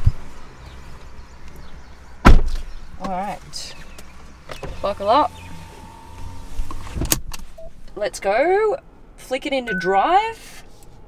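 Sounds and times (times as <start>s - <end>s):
low steady hum: 9.6s - 10.4s.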